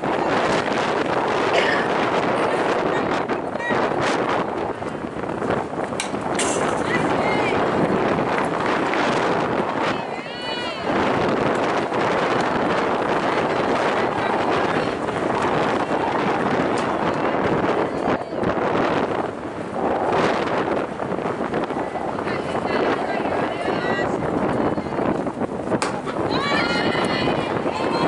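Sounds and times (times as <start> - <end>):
indistinct chatter: 0.0 - 28.0
wind buffeting microphone: 0.0 - 28.0
bat hitting ball crack: 25.8 - 26.1.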